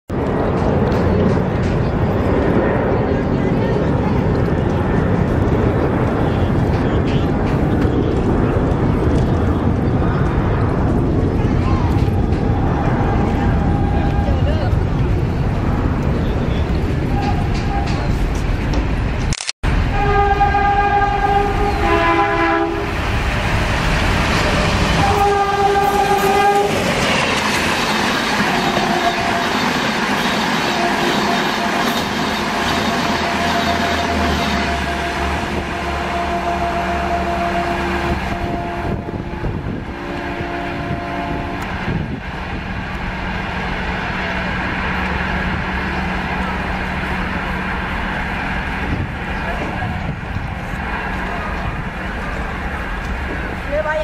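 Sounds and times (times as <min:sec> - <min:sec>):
train wheel clatter: 0:00.1 - 0:19.3
locomotive engine rumble: 0:00.1 - 0:54.0
two-note train horn blasts: 0:19.8 - 0:22.9, 0:25.0 - 0:26.8, 0:28.5 - 0:29.7, 0:32.8 - 0:41.7.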